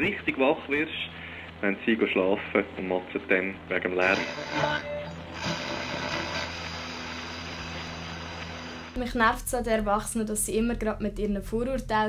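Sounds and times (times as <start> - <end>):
static-like noise: 0.0 - 9.5.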